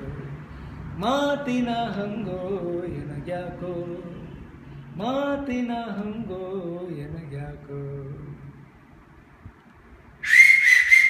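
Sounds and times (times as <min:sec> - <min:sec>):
person whistling loud and high: 0:10.2 - 0:11.0.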